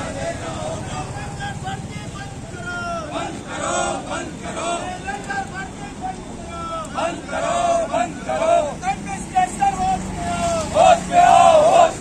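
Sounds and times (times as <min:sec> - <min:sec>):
vehicle engine running: 0:00.0 - 0:06.8
marchers shouting slogans: 0:00.0 - 0:12.0.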